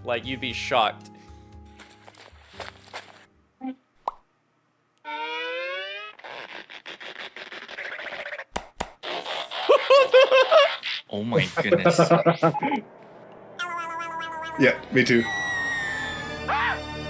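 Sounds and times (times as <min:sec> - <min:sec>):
rustling noise: 0:01.7 - 0:03.3
pitched tone: 0:05.0 - 0:06.2, 0:12.5 - 0:16.7.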